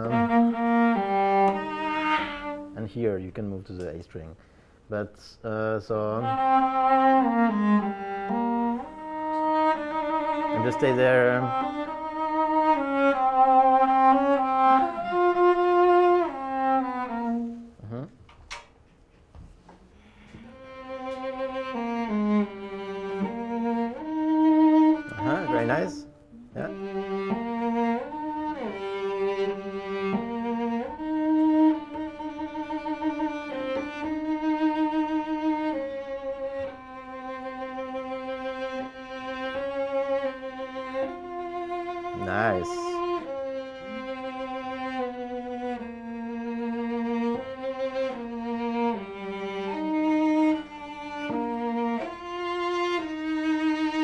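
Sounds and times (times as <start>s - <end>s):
cello melody with vibrato: 0.0s - 3.2s, 5.5s - 18.0s, 20.0s - 54.0s.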